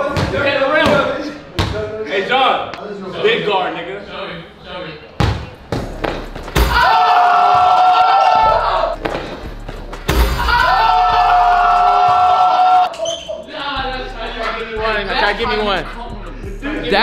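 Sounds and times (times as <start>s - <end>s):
basketball bouncing: 0.0s - 1.8s, 5.2s - 7.8s, 8.4s - 10.5s, 12.0s - 12.3s
men shouting excitedly: 6.7s - 9.0s, 10.4s - 16.0s
ball banging hoop rim: 9.0s - 10.5s.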